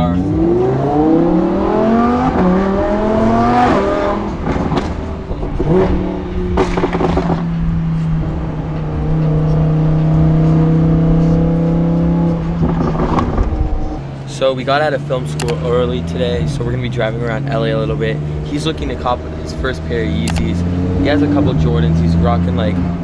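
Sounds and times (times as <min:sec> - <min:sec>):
car engine revving: 0:00.0 - 0:23.0
sharp exhaust cracks: 0:03.9 - 0:08.1.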